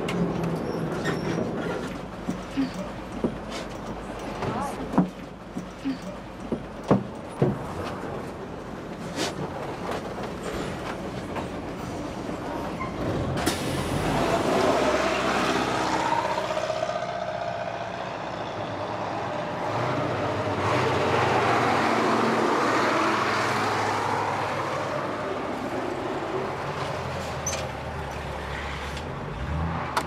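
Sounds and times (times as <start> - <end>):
heavy vehicles passing: 0.0 - 30.0.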